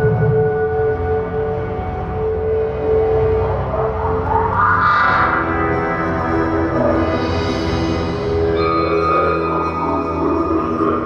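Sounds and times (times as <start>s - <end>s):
ambient band music: 0.0s - 11.0s.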